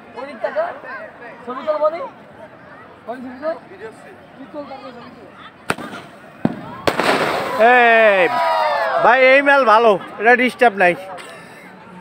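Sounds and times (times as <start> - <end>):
faint crowd voices: 0.0 - 12.0
fireworks bangs: 5.7 - 8.3.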